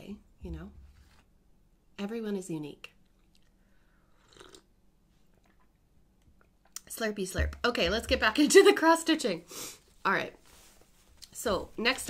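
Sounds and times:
slurping sip from a mug: 4.1 - 4.7.

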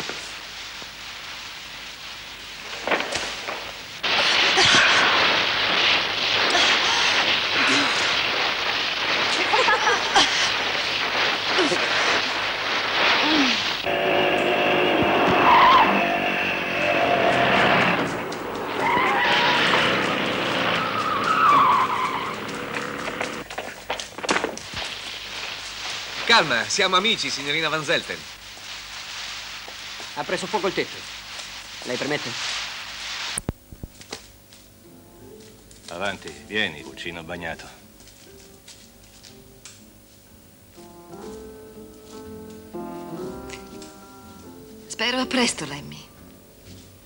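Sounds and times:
steady rushing hiss: 0.0 - 47.0
tyre squeals: 13.2 - 23.4
car engines running: 13.8 - 23.4.

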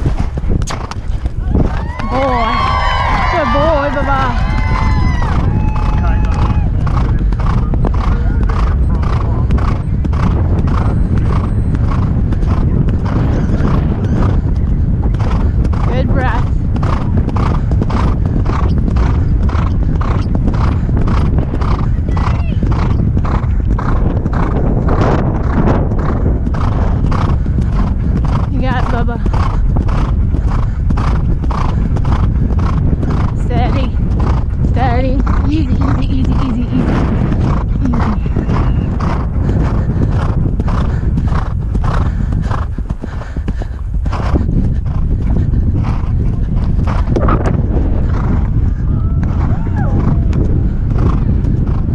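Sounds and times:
horse breathing: 0.0 - 1.4, 6.8 - 49.0, 50.0 - 51.9
hoofbeats on grass: 0.0 - 51.9.

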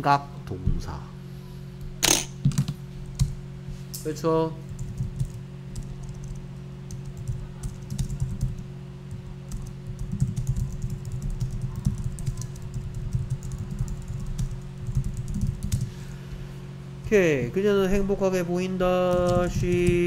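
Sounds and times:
steady low hum: 0.0 - 20.0
typing on computer keyboard: 4.7 - 15.9, 19.0 - 20.0.

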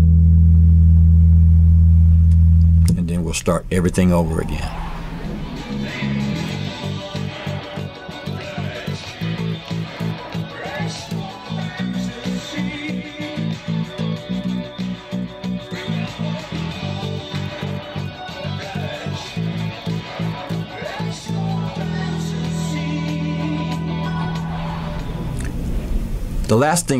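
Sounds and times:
electric bass guitar repeated notes: 0.0 - 4.2, 5.3 - 25.2.

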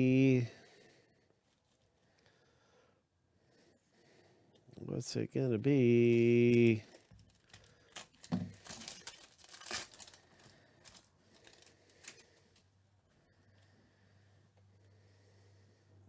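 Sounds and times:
foil wrapper crinkling: 6.8 - 12.7.

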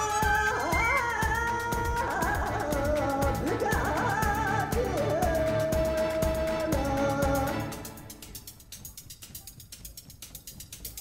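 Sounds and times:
fast clicking percussion rattle: 0.0 - 11.0.

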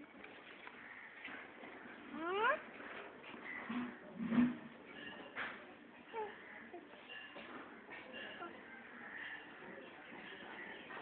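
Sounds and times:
faint scattered sounds: 0.0 - 11.0.

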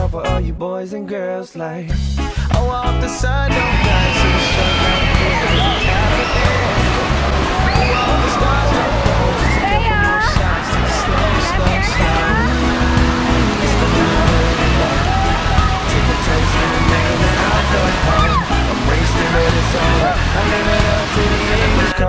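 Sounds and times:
background music with steady beat: 1.9 - 22.0
water spraying from fountains: 3.5 - 22.0
children's voices: 3.6 - 22.0.

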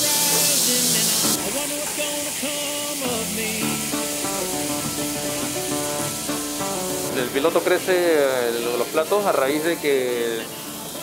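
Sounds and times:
background music with held notes: 0.0 - 11.0
meat sizzling in a frying pan: 0.0 - 11.0.

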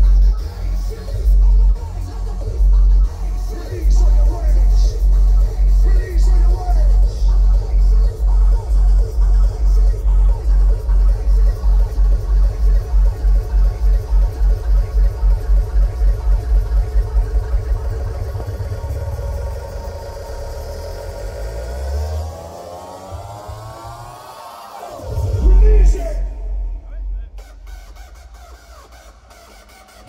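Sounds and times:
loud dance music over pa: 0.0 - 30.0
rising synth sweep: 12.0 - 30.0.

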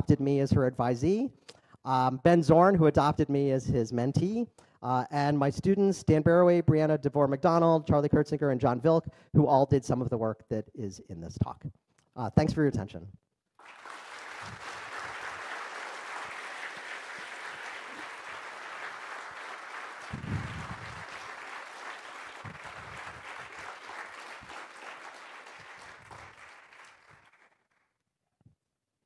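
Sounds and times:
audience applauding: 13.6 - 27.8.

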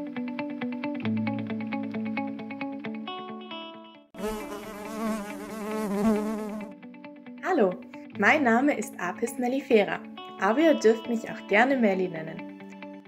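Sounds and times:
buzzing bee sound effect: 4.2 - 6.8.

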